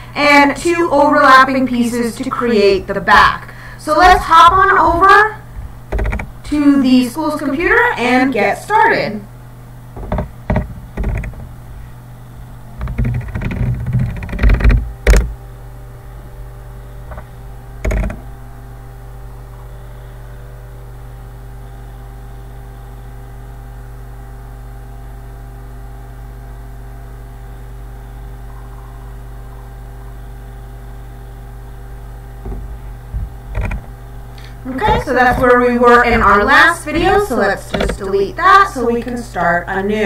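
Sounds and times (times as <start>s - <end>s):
electrical hum: 0.0s - 40.0s
loud knocks and clicks: 5.9s - 6.5s, 9.9s - 11.6s, 12.8s - 15.4s, 17.1s - 18.3s, 32.4s - 34.0s, 34.7s - 38.2s.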